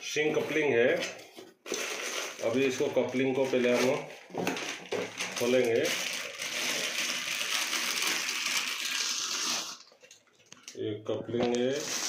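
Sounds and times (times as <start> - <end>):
plastic bag crinkling: 1.4 - 10.7, 11.6 - 12.0.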